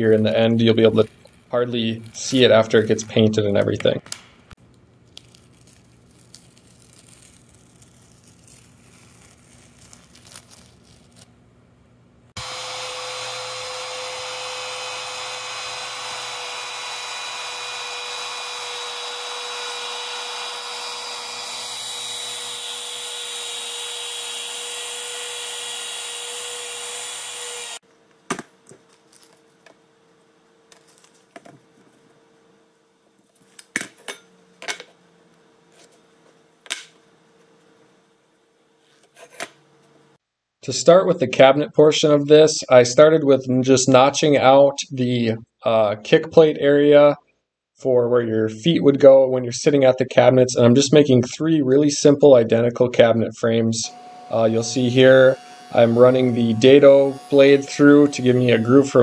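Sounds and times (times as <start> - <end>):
router whining while cutting: 12.4 - 27.8, 53.9 - 59.0.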